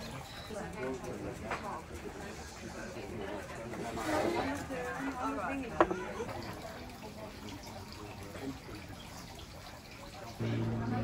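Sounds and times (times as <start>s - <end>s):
people talking: 10.2s - 11.0s.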